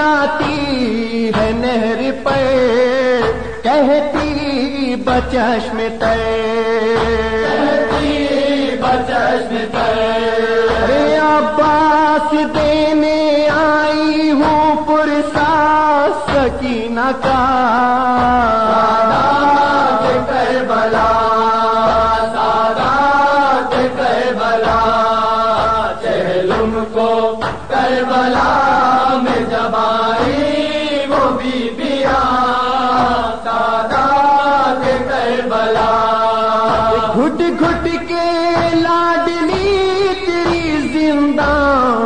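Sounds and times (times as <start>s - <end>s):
low thumping beat: 0.0s - 42.0s
person chanting a lament: 0.0s - 42.0s.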